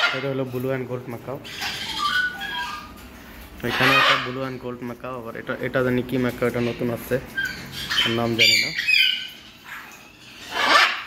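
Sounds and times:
parrot squawking: 0.0s - 0.2s, 1.4s - 3.0s, 3.6s - 4.6s, 6.5s - 11.0s.

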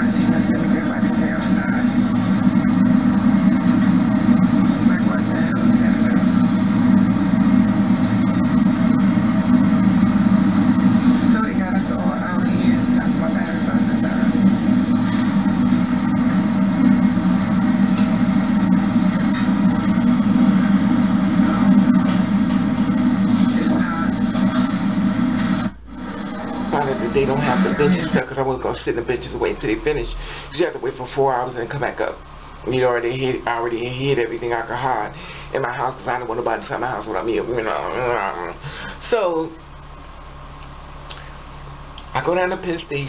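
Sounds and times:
low rumble: 0.0s - 28.3s.

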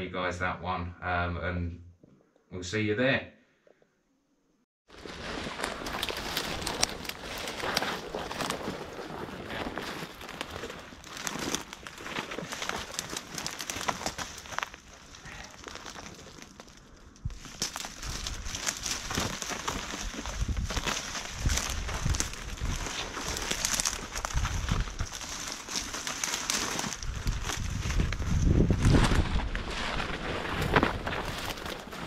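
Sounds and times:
twigs crackling and rustling: 4.9s - 32.0s.

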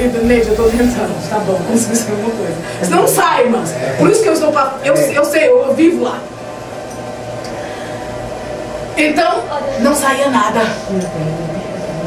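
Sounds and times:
low constant hum: 0.0s - 12.0s.

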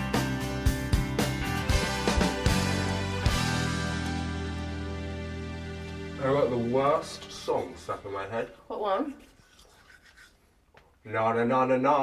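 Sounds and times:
toothbrush scrubbing teeth: 7.2s - 10.8s.

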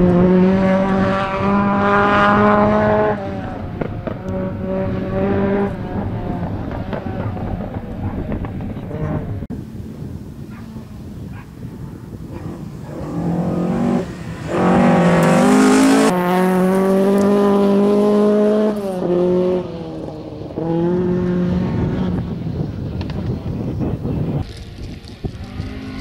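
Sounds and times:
rally car engine racing past: 12.4s - 22.3s.

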